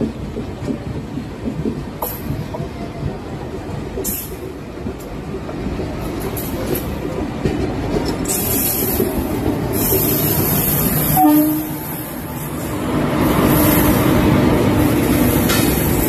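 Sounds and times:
train rumbling on rails: 0.0 - 16.0
locomotive rushing hiss: 8.0 - 16.0.

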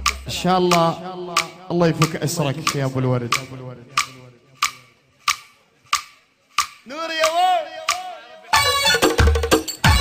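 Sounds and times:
sharp percussion strikes: 0.0 - 10.0
person singing: 6.9 - 9.2.

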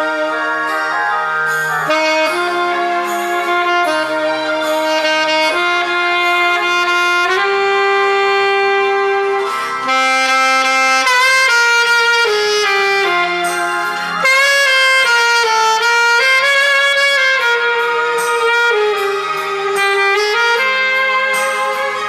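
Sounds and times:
alto saxophone ballad melody: 0.0 - 22.0.

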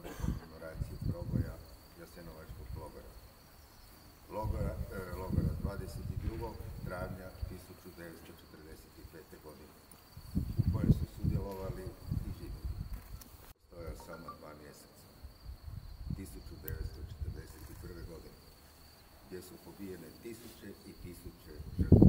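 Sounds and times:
man speaking into microphones: 0.0 - 3.2, 4.3 - 9.8, 10.5 - 12.8, 13.7 - 15.1, 16.1 - 18.4, 19.3 - 22.0
thin high-pitched whine: 13.8 - 15.0.

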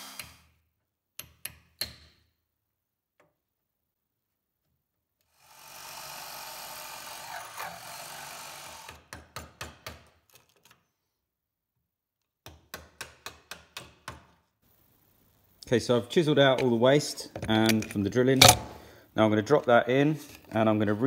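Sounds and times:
power tool boring wood: 5.3 - 9.0
hammer tapping a chisel: 12.4 - 14.3.

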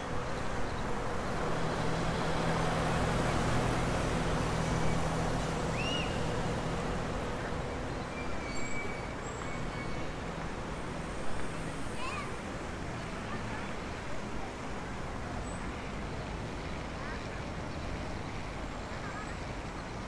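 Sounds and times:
heavy vehicle engine hum: 0.0 - 19.8
passing cars: 0.0 - 20.0.

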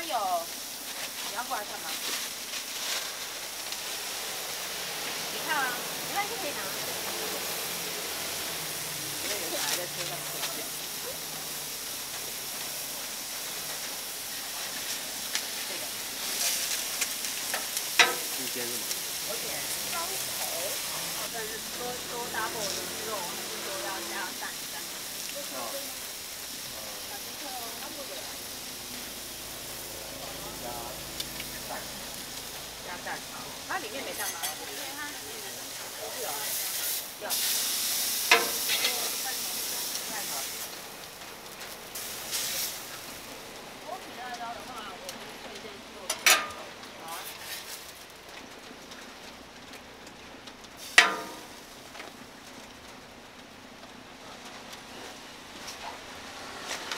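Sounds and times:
food sizzling on a griddle: 0.0 - 56.9.

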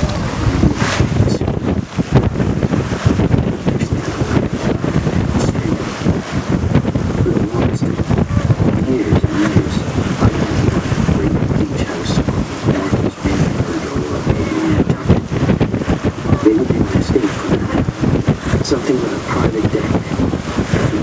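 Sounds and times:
water rushing past hull: 0.0 - 21.0
wind buffeting microphone: 0.0 - 21.0.

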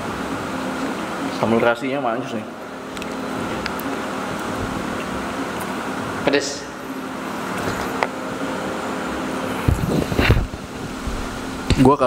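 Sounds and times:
machine hum: 0.0 - 12.0
microphone handling thumps: 9.6 - 11.9.

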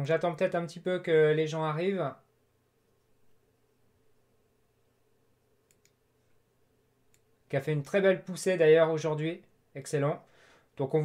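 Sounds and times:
computer mouse clicks: 5.6 - 6.4.

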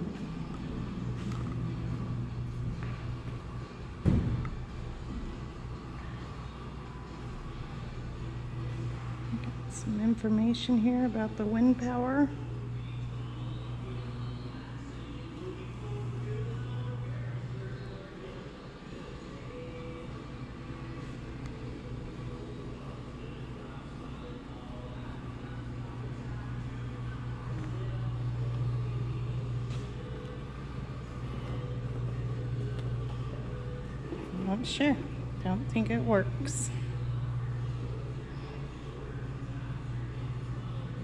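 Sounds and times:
low indoor rumble: 0.0 - 41.0.

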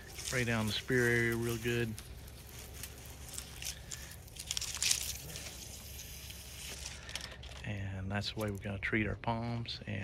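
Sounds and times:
sprayer wand hissing: 0.0 - 7.1
palm fronds rustling: 0.0 - 7.4.

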